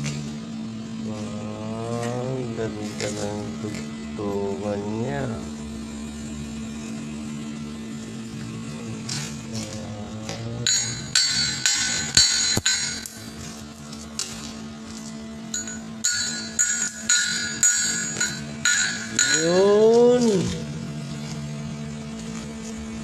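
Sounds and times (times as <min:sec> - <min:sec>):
electrical hum: 0:00.0 - 0:23.0
metal tool striking steel pipe: 0:10.6 - 0:13.2, 0:15.5 - 0:20.4.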